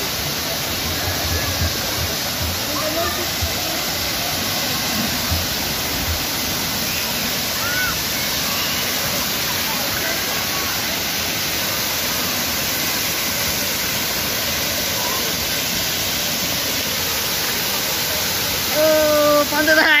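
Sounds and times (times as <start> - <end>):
water pouring and spraying: 0.0 - 20.0.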